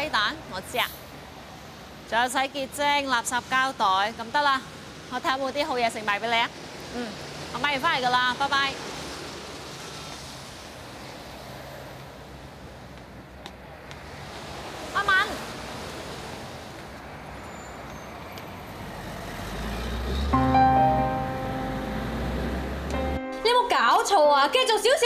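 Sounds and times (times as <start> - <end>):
rain: 0.0 - 23.0
road traffic: 0.0 - 25.0
bus rumbling past: 6.4 - 23.3
background music: 20.3 - 24.7.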